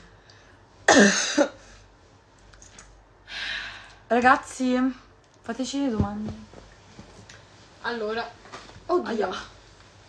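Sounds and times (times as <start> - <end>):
woman clearing her throat: 0.9 - 1.6.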